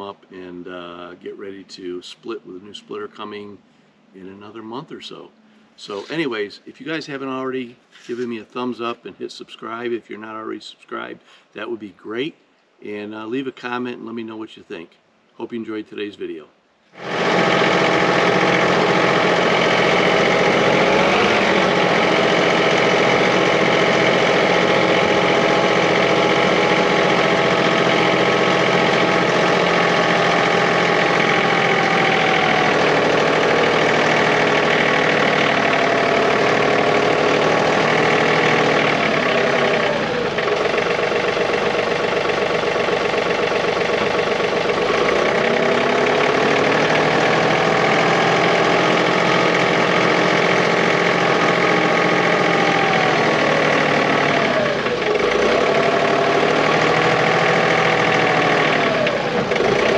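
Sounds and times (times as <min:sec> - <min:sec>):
tractor diesel engine running: 0:17.0 - 0:59.9.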